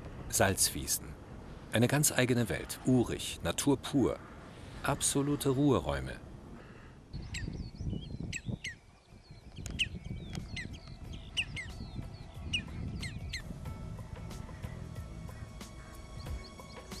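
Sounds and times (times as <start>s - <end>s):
wild birds calling: 0.0s - 17.0s
soft music tones: 9.6s - 17.0s.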